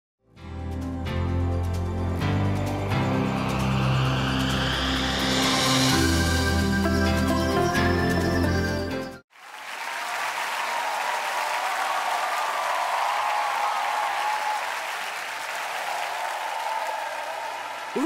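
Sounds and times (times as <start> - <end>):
theme music: 0.3 - 9.2
studio audience applauding: 9.3 - 18.0.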